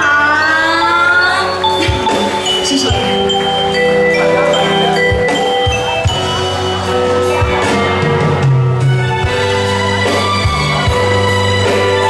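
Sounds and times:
steady bass: 0.0 - 12.0
held keyboard chords: 0.6 - 12.0.

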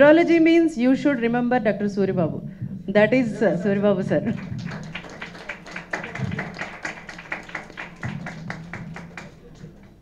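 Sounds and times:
small group clapping: 3.7 - 10.0.

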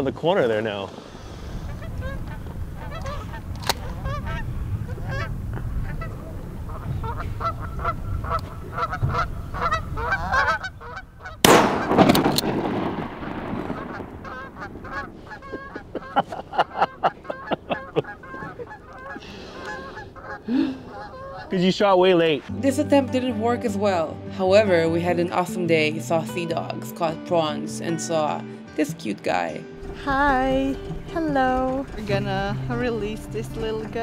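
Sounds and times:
low wind rumble: 0.0 - 22.5, 29.8 - 34.0
geese honking: 1.0 - 12.1, 12.9 - 24.1, 29.3 - 34.0
shotgun shot: 11.4 - 15.0.

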